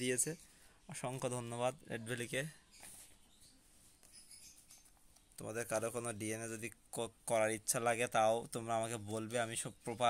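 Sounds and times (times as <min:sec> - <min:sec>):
faint light rustling: 0:02.3 - 0:06.9.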